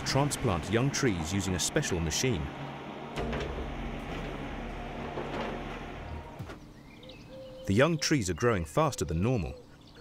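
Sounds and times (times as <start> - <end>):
machine humming: 0.0 - 6.7.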